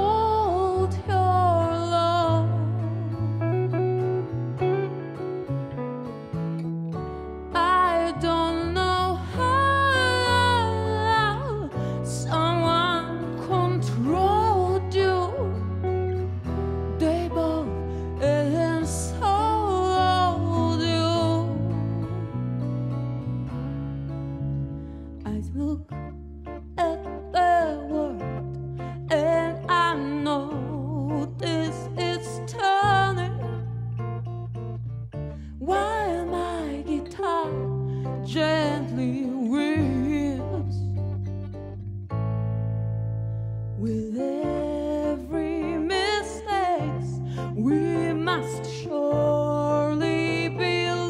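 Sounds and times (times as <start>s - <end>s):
woman singing: 0.0s - 3.4s, 7.5s - 16.0s, 16.9s - 22.4s, 25.2s - 26.1s, 26.8s - 34.0s, 35.6s - 41.1s, 43.8s - 51.0s
fretless electric bass: 0.0s - 51.0s
guitars: 0.0s - 51.0s.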